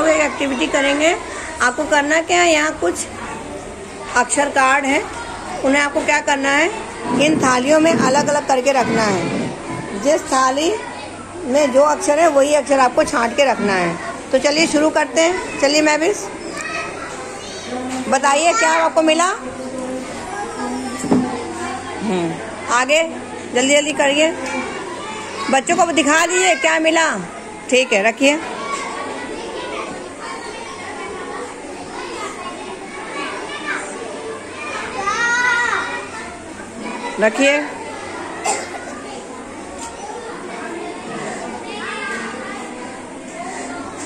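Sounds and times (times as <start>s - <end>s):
young children talking quietly: 0.0s - 44.0s
woman talking: 5.6s - 10.8s
high child's voice: 16.2s - 22.4s, 28.4s - 44.0s.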